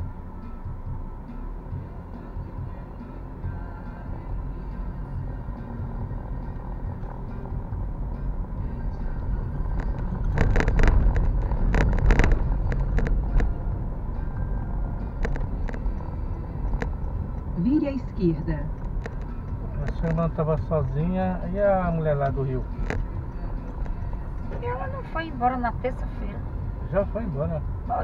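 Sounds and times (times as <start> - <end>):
car engine and tyre rumble: 0.0 - 28.0.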